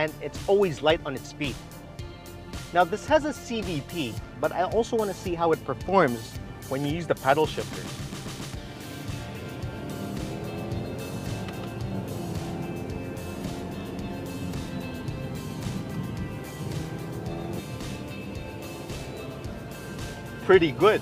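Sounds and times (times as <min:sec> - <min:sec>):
background music: 0:00.0 - 0:21.0
road noise: 0:07.4 - 0:21.0
car engine accelerating: 0:07.6 - 0:21.0.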